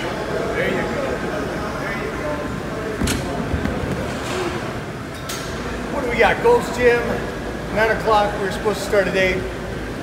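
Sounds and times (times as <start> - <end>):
gym room rumble: 0.0 - 10.0.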